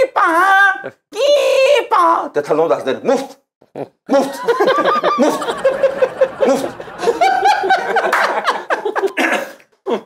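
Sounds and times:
men speaking: 0.0 - 3.5
men laughing: 4.1 - 10.0.

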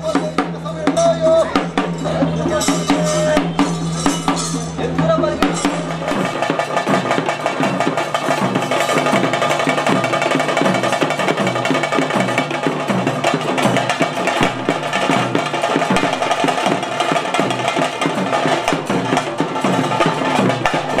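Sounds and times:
barrel drums beaten with sticks: 0.0 - 21.0
smaller drums: 0.0 - 21.0.

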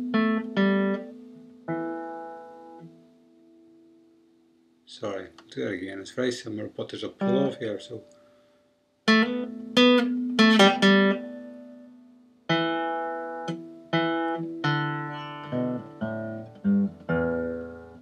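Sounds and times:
acoustic guitar picking notes: 0.0 - 3.9, 7.2 - 8.0, 9.0 - 18.0.

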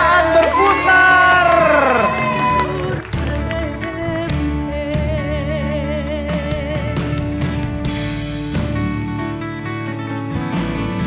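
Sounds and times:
high voice cheering: 0.0 - 3.1
background music: 0.0 - 11.0.

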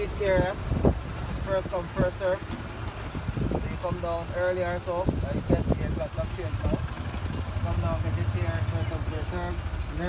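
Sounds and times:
wind buffeting microphone: 0.0 - 8.8
people's voices: 1.3 - 10.0.

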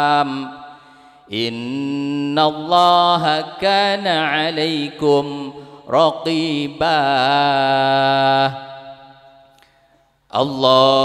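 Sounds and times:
man chanting through a microphone: 0.0 - 9.1, 10.3 - 11.0
echo of voice: 0.0 - 11.0.

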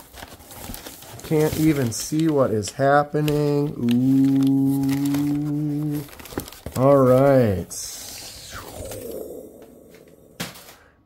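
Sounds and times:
packing paper rustling: 0.0 - 9.4.

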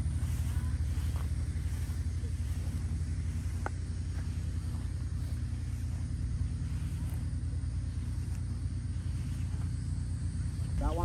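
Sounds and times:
engine running: 0.0 - 11.0.

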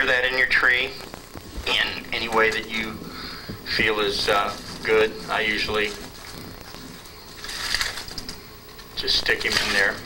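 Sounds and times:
balloons rubbing and squeaking: 0.0 - 8.4.

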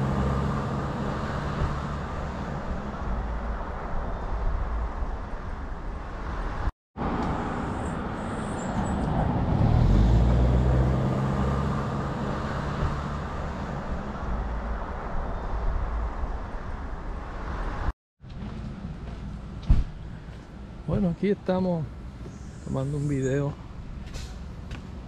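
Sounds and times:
motor vehicle passing: 6.2 - 14.8.

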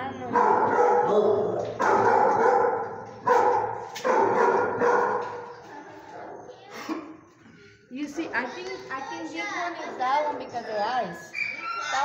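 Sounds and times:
dog barking: 0.3 - 5.4.

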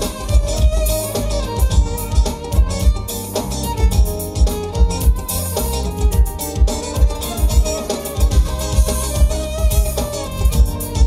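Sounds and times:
baglama playing: 0.0 - 11.0
drum kit beat: 0.0 - 11.0
electric guitar: 0.0 - 11.0.

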